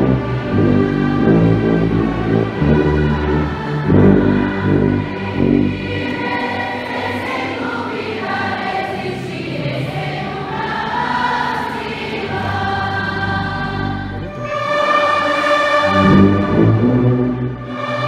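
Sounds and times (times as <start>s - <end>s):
choir singing a hymn: 0.0s - 18.0s
orchestral accompaniment: 0.0s - 18.0s.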